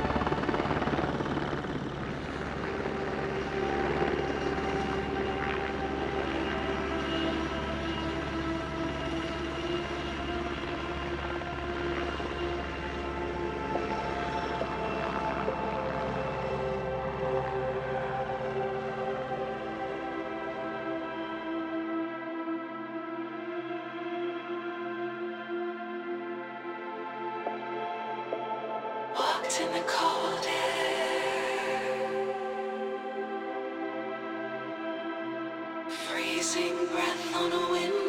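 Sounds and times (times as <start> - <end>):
helicopter hovering: 0.0 - 22.6.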